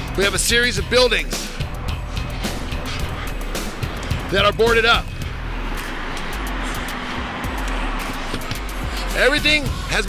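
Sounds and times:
background music: 0.0s - 10.0s
cars going by: 0.0s - 10.0s.

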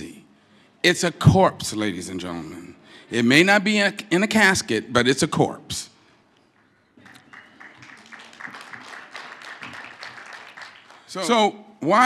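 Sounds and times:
audience applauding: 7.0s - 11.3s.

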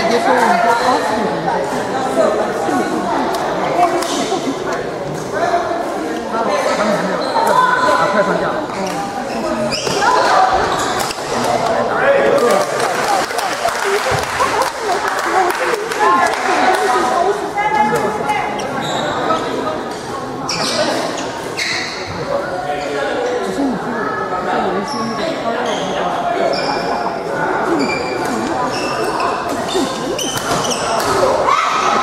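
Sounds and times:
crowd chatter in a hall: 0.0s - 32.0s.

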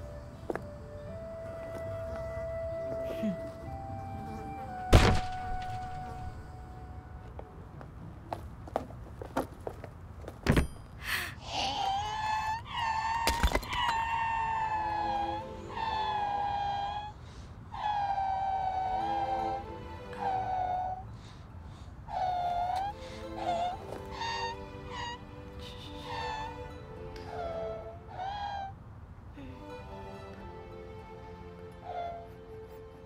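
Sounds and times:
heavy thuds: 4.8s - 6.4s
creature's high wavering cries: 11.4s - 19.6s, 22.1s - 25.2s, 25.8s - 26.7s, 27.3s - 28.8s.

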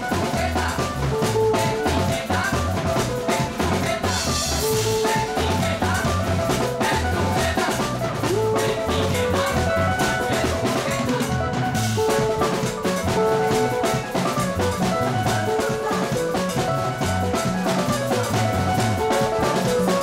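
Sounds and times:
live band playing dance music: 0.0s - 20.0s.

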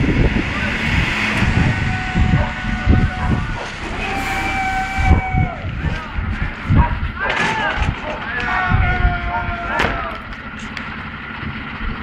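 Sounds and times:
fire engine diesel engine running: 0.0s - 12.0s
high squealing tones: 1.3s - 6.0s.

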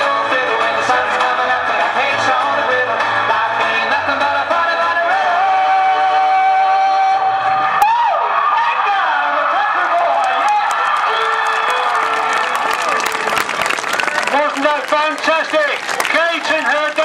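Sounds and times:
person singing: 0.0s - 7.4s
crowd clapping and cheering: 7.2s - 17.0s.

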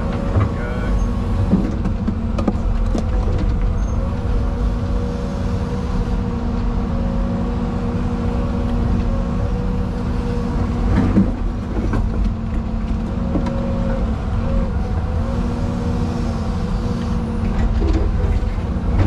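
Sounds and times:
excavator engine and hydraulics: 0.0s - 19.0s.

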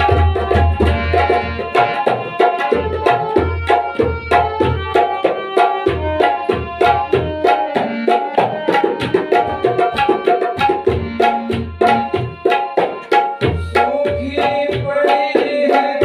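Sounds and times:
harmonium melody: 0.0s - 16.0s
tabla rhythm: 0.0s - 16.0s.

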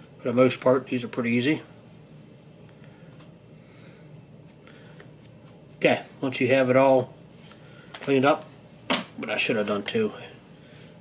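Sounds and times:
man talking: 0.2s - 1.7s, 5.8s - 7.2s, 9.2s - 10.4s.

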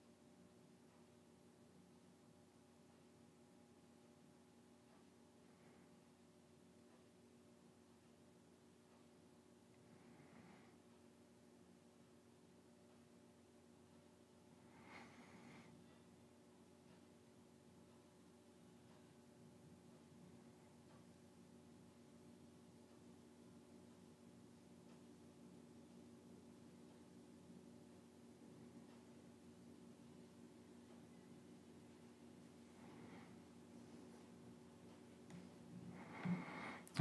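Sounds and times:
steady low hum: 0.0s - 37.0s
brief breath: 35.9s - 36.8s.

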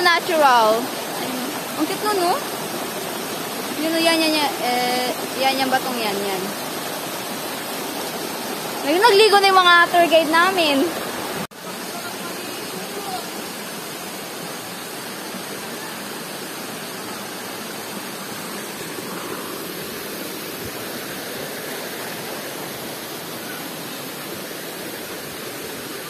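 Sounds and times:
stream rushing over stones: 0.0s - 26.0s.

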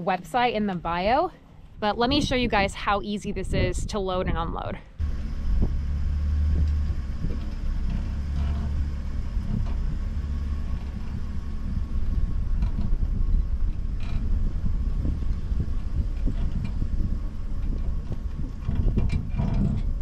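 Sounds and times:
vehicle engine running low: 5.0s - 20.0s.

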